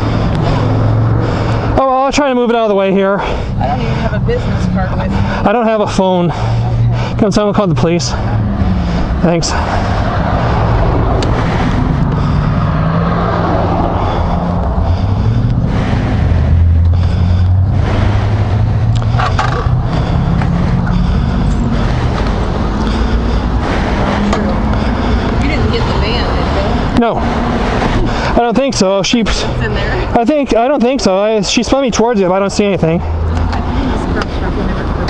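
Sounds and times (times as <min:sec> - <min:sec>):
street noise: 0:00.0 - 0:35.0.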